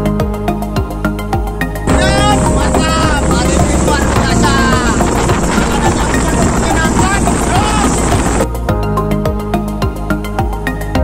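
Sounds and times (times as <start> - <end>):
man talking: 1.9 - 8.4
wind rumble on microphone: 1.9 - 8.6.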